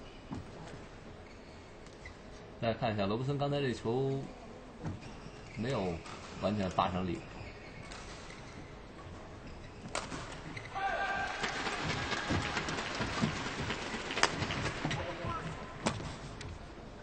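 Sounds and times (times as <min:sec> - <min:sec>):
racket striking shuttlecock: 0:09.9 - 0:10.4, 0:13.9 - 0:15.0.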